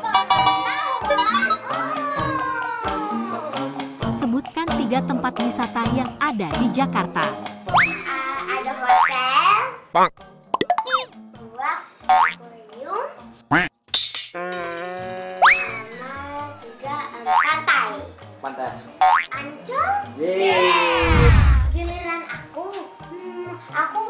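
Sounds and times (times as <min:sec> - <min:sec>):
children talking: 0:00.0 - 0:03.6, 0:07.9 - 0:09.9
light background music: 0:00.0 - 0:24.0
cartoon clicks: 0:10.0 - 0:11.1
cartoon falling swoop: 0:20.6 - 0:22.0.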